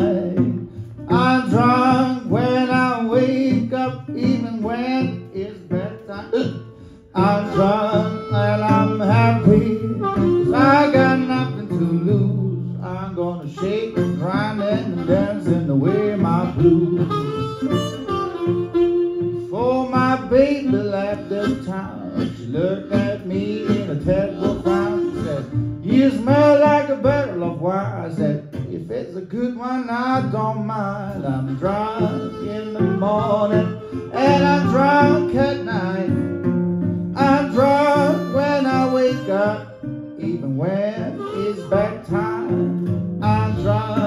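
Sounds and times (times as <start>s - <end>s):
harmonica: 0.0s - 28.5s, 30.0s - 44.0s
person singing: 0.0s - 36.4s, 37.1s - 44.0s
plucked resonator guitar: 0.0s - 44.0s.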